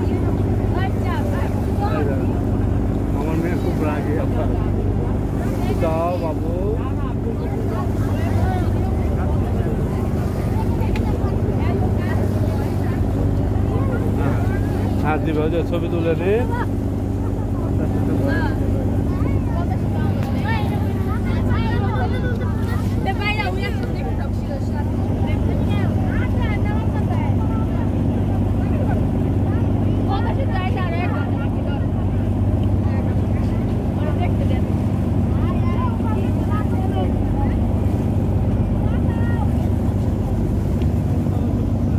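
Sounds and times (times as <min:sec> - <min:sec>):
boat engine droning: 0:00.0 - 0:41.9
passengers chattering: 0:00.0 - 0:41.9.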